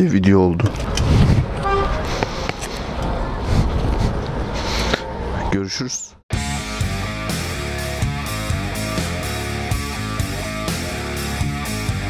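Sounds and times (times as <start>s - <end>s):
wind buffeting microphone: 0.6s - 5.5s.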